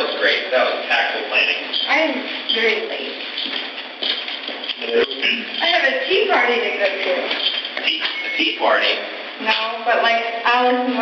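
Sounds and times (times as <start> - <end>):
people in conversation: 0.0 - 11.0.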